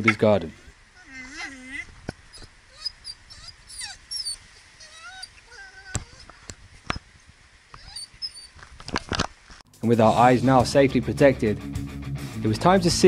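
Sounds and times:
dog whining: 0.0 - 6.5, 7.7 - 8.6.

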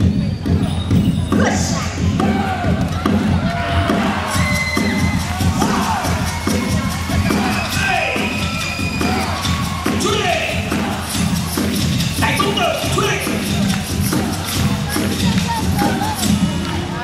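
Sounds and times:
dance music over loudspeakers: 0.0 - 17.0
audience cheering: 2.1 - 16.4.

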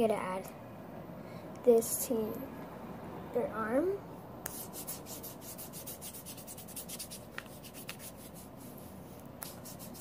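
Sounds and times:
hand swishing on skin: 4.4 - 10.0.

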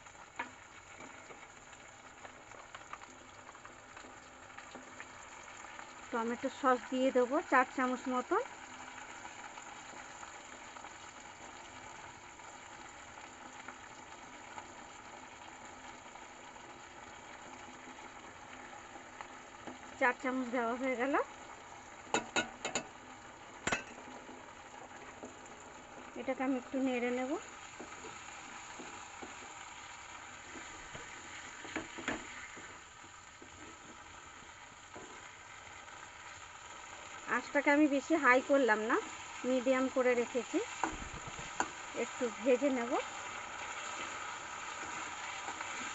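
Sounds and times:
onions sizzling in a wok: 0.0 - 45.9
spatula stirring food: 22.0 - 37.2, 40.4 - 42.0, 43.0 - 45.9
spatula knocking against pan: 22.1 - 22.9.

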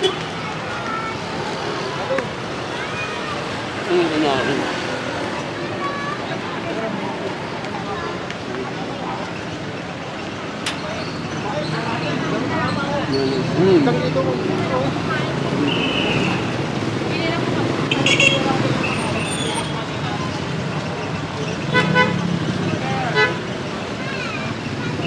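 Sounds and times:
busy street traffic: 0.0 - 25.0
voices in background: 0.0 - 25.0.

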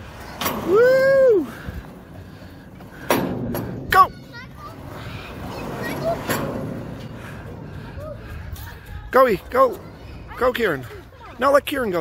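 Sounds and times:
faint children's voices: 0.0 - 12.0.

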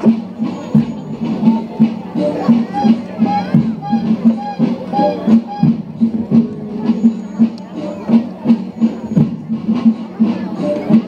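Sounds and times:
marching drums beating: 0.0 - 11.0.

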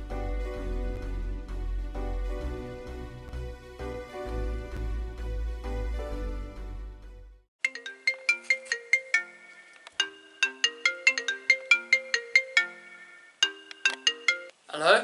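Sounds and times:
mobile phone ringtone: 7.6 - 14.6.

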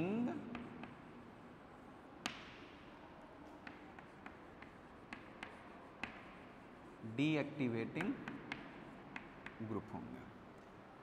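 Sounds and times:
chalk tapping on chalkboard: 0.0 - 1.2, 2.2 - 7.0, 7.6 - 9.8
faint room hiss: 0.0 - 11.0.

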